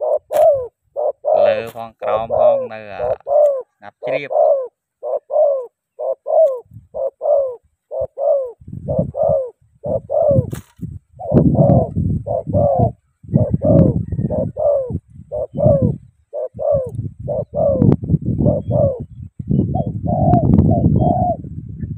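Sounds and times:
doves cooing: 0.0 - 21.6.

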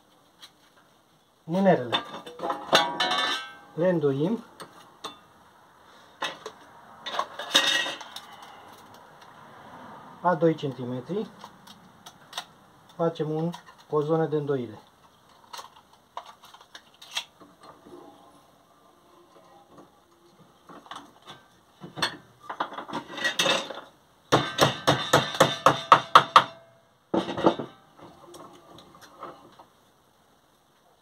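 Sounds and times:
metal scraping: 6.1 - 8.9, 16.2 - 23.9
hammer striking steel strip: 24.3 - 26.6.

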